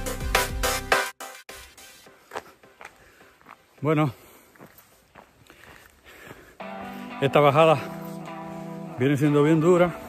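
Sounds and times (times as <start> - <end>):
faint footsteps on a trail: 2.0 - 10.0.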